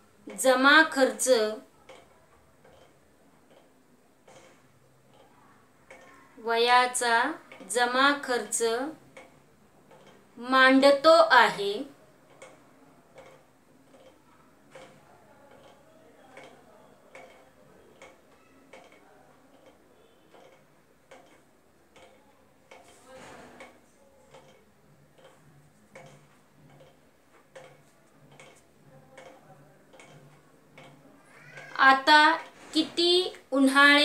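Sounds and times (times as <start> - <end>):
faint regular ticking: 0.0 - 34.0.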